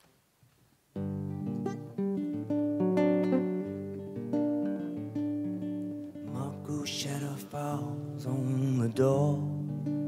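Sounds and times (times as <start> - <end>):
nylon-string guitar picking melody: 1.0 - 10.0.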